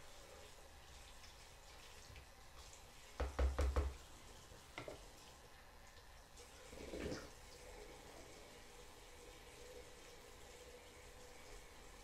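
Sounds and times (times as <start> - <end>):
faint running tap: 0.0 - 12.0
quick knocks on a sink: 3.2 - 4.0.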